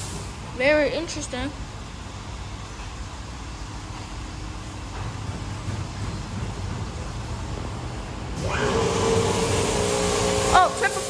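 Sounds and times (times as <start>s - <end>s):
car wash hiss: 0.0s - 0.8s, 8.4s - 11.0s
car wash mechanical hum: 0.0s - 11.0s.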